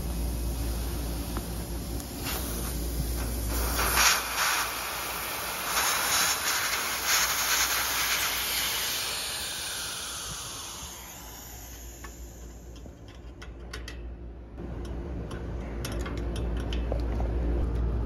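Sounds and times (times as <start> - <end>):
pressurised gas hissing: 0.0 - 12.8.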